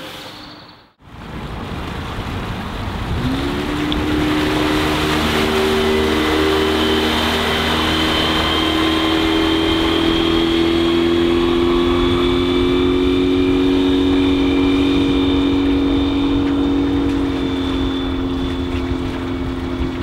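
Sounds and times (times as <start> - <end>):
water and wind hiss: 0.0 - 20.0
outboard engine running: 2.7 - 20.0.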